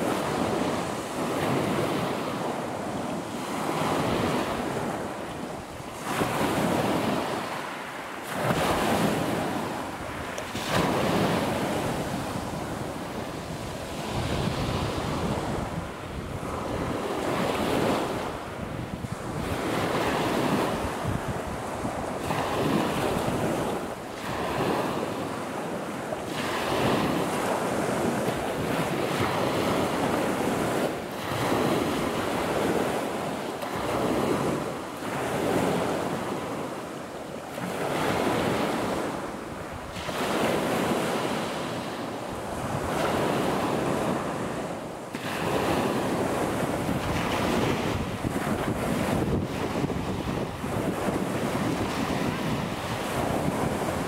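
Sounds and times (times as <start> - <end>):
wind buffeting microphone: 0.0 - 36.7, 37.5 - 54.0
sea waves washing in: 0.0 - 54.0.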